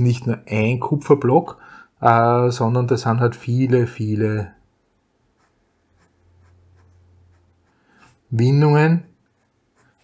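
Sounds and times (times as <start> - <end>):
pen scratching on paper: 5.3 - 8.2, 9.2 - 10.0.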